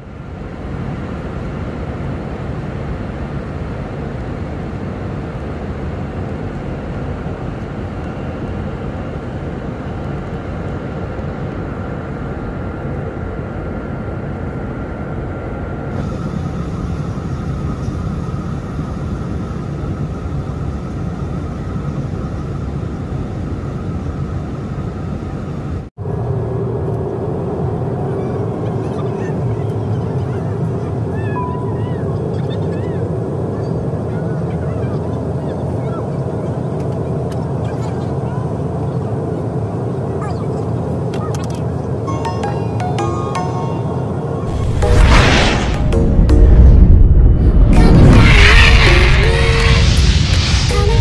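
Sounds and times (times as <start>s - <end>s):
airliner engine roar and rushing air: 0.0s - 51.0s
low humming drone: 0.0s - 51.0s.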